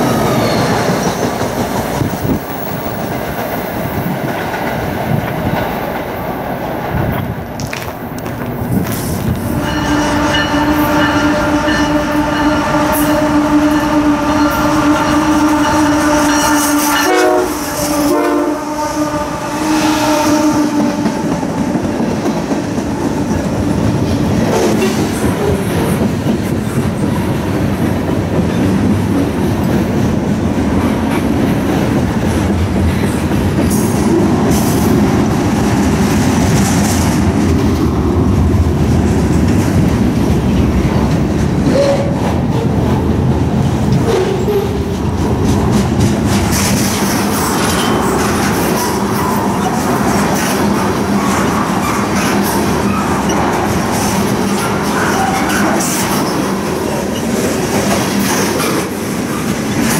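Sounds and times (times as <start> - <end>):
train wheels clacking on rails: 0.0 - 18.5, 20.3 - 59.9
locomotive air horn blasts: 9.5 - 21.4.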